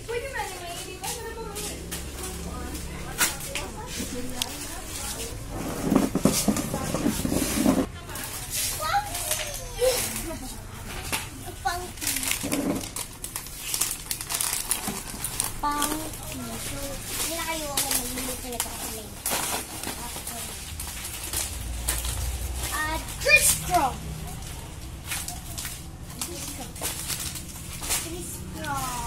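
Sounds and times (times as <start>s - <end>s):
girl's voice: 8.6s - 10.6s, 11.2s - 12.5s, 15.6s - 19.2s, 22.6s - 24.5s, 27.9s - 29.0s
plastic packets crinkling: 11.4s - 23.7s, 24.3s - 29.0s.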